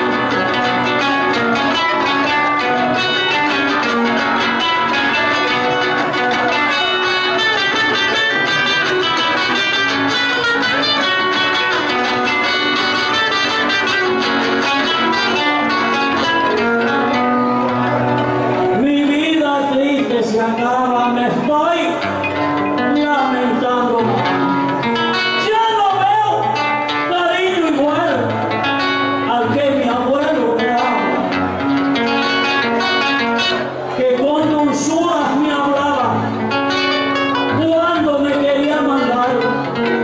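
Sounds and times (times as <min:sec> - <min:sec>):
acoustic guitar plucked melody: 0:00.0 - 0:40.0.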